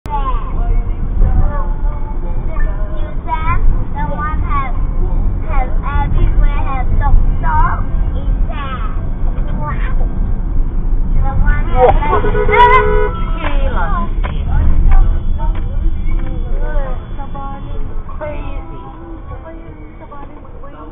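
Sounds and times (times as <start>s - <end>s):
people talking: 0.1s - 10.1s, 11.2s - 20.9s
vehicle rumble from inside cab: 0.1s - 20.9s.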